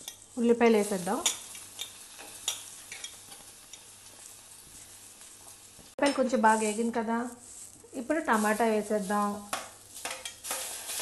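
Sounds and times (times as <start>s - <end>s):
onions sizzling in oil: 0.0s - 11.0s.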